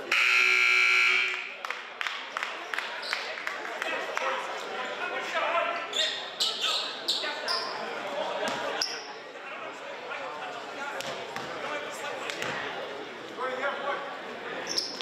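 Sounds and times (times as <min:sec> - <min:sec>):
voices chattering in a gym: 0:00.0 - 0:15.0
sneaker squeaks: 0:05.8 - 0:07.9, 0:14.6 - 0:15.0.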